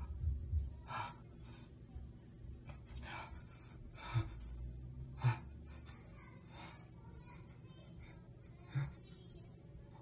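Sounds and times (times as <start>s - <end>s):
man gasping breaths: 2.9s - 7.0s.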